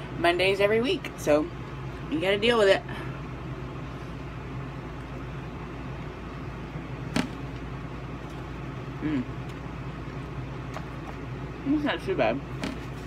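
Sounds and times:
appliance mechanical hum: 0.0 - 13.0.

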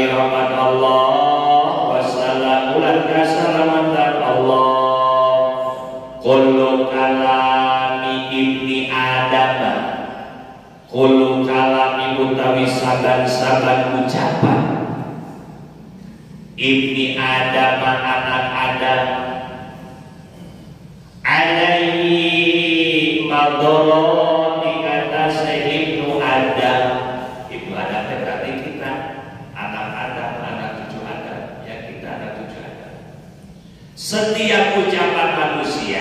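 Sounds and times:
man chanting: 0.0 - 15.6, 16.3 - 36.0.

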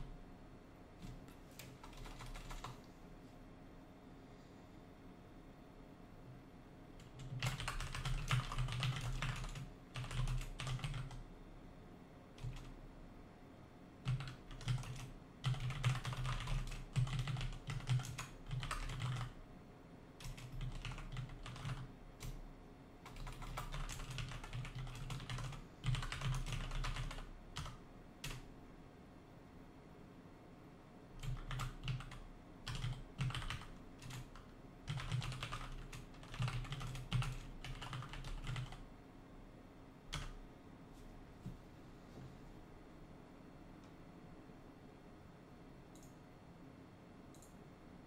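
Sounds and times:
typing on computer keyboard: 1.0 - 2.8, 7.0 - 11.2, 12.4 - 12.8, 14.0 - 19.4, 20.2 - 22.4, 23.0 - 28.5, 31.2 - 38.8, 40.1 - 40.4.

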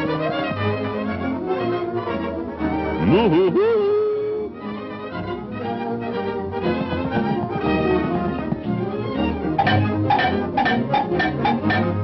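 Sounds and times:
orchestral cartoon music: 0.0 - 12.0.

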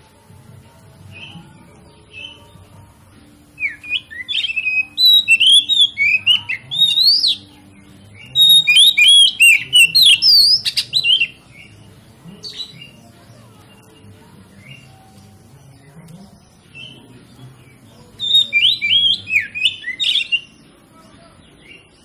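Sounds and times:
bird singing varied whistles: 3.6 - 7.5, 8.2 - 11.4, 18.2 - 20.5.

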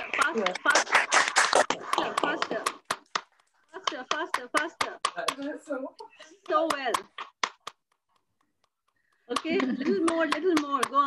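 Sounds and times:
hand claps: 0.0 - 5.6, 6.2 - 11.0.

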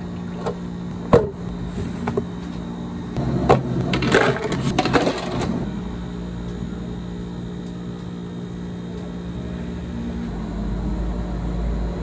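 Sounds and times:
low machine hum: 0.0 - 12.0
plastic cups clattering: 3.5 - 5.5.

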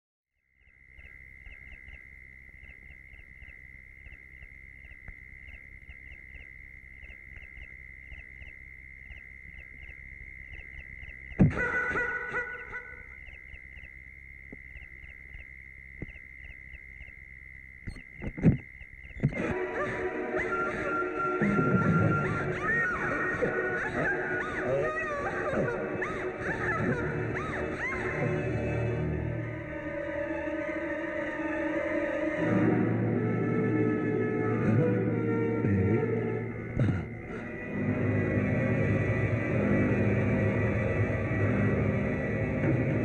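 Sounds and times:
small chirps: 0.5 - 19.6
horror film music: 7.3 - 13.9, 19.2 - 43.0
high eerie tone: 17.8 - 43.0.

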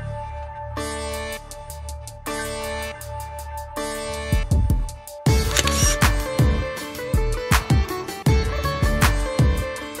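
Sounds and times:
background music with steady beat: 0.0 - 10.0
camera shutter click: 5.4 - 6.1.

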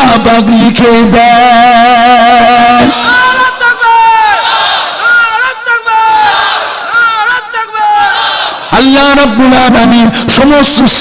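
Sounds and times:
crowd chanting: 2.9 - 8.8.

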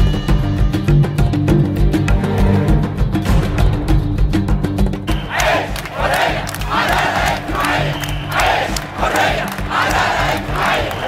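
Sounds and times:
music: 0.0 - 11.0
crowd chanting in unison: 5.1 - 11.0.

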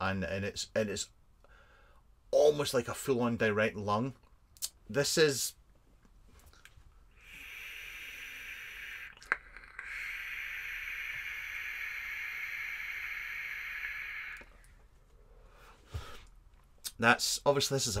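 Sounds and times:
airy hiss of vape draw: 7.1 - 14.7
vape device click: 7.7 - 14.6.

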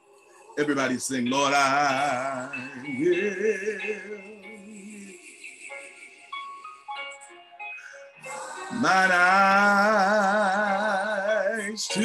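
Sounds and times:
person singing with vibrato: 0.0 - 12.0
soft instrumental backing music: 0.0 - 12.0.

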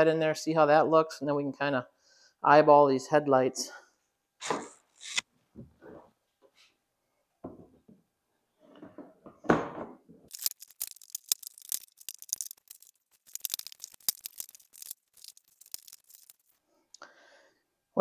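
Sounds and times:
plastic crackling clicks: 10.3 - 16.5.

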